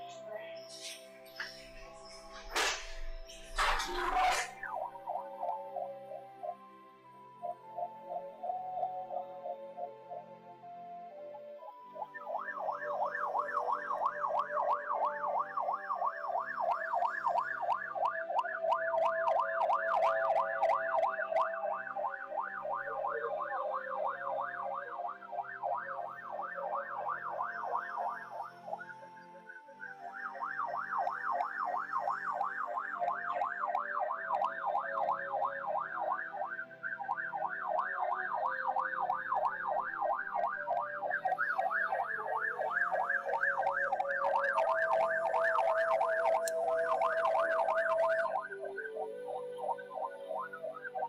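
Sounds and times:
warbling siren-like tone: 2.2 - 6.6, 11.6 - 51.0.

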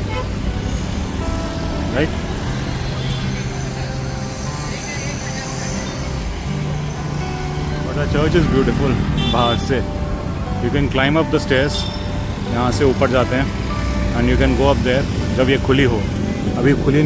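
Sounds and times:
background music with held notes: 0.0 - 17.0
cars passing: 0.0 - 17.0.

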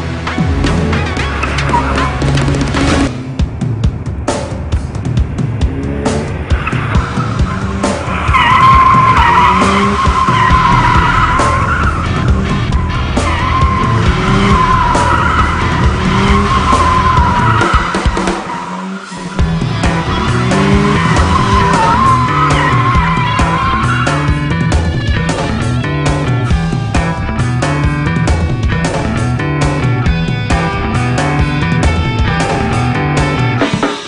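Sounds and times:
car tyres squealing: 0.8 - 3.3, 5.7 - 33.7.

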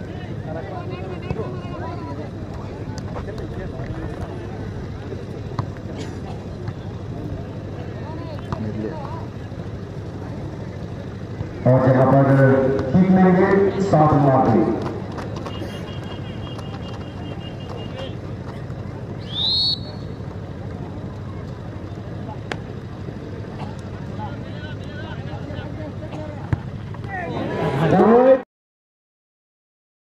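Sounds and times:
crowd murmuring: 0.0 - 28.4
referee's whistle blast: 19.2 - 20.1
crowd shouting: 27.1 - 28.4.

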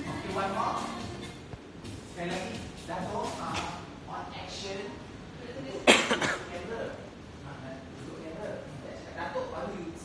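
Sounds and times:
person coughing: 5.8 - 6.5.

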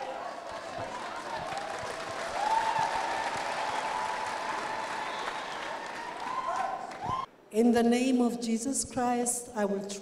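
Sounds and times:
congregation applauding: 0.0 - 7.3.

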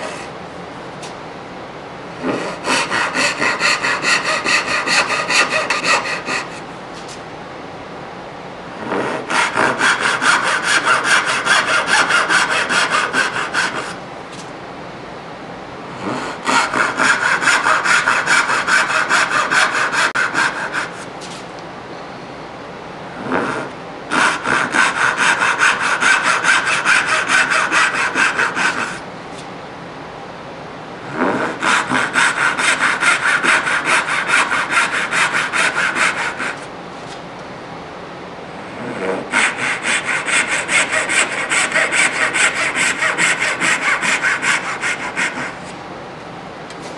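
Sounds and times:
hand saw cutting wood: 2.2 - 6.6, 8.9 - 14.0, 16.0 - 21.1, 23.4 - 29.0, 31.2 - 36.7, 39.1 - 45.6.

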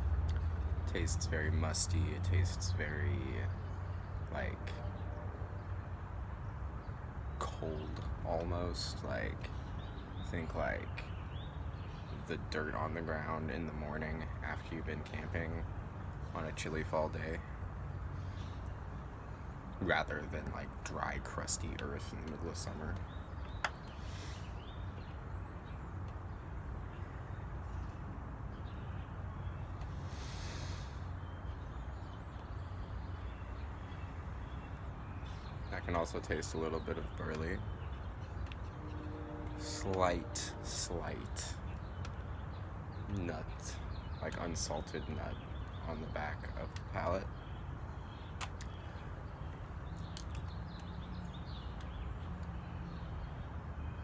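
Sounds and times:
distant traffic rumble: 0.0 - 54.0
breathy hiss: 23.9 - 24.6, 29.9 - 31.2.

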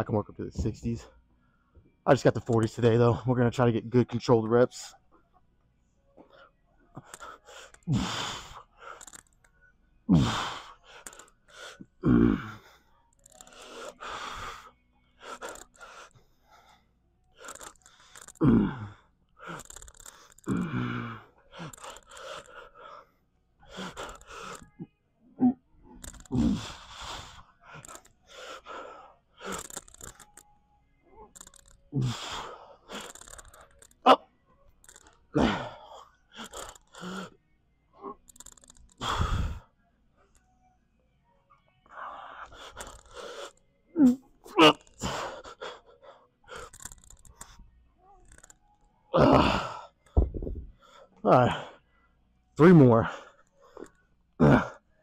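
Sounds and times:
man breathing hard: 10.1 - 24.8, 26.0 - 30.2, 31.4 - 33.8, 38.4 - 39.7.

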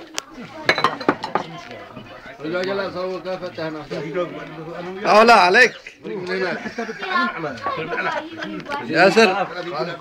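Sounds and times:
quiet talk: 0.0 - 10.0
dishes and glasses clinking: 0.6 - 1.6.

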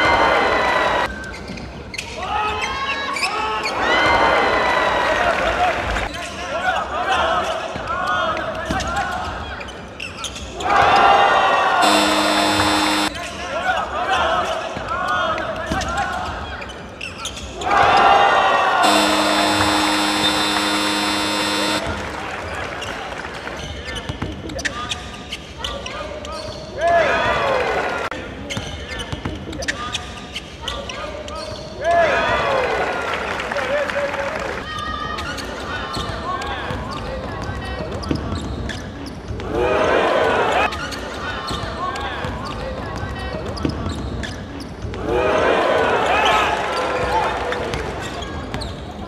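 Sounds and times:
scoreboard buzzer: 11.8 - 13.2, 18.8 - 22.0
sneakers squeaking on hardwood: 36.9 - 39.3.

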